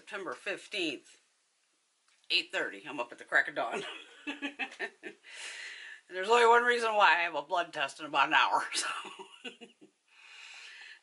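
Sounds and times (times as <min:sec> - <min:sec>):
woman drawing breath: 0:05.2 - 0:06.0, 0:10.1 - 0:11.0.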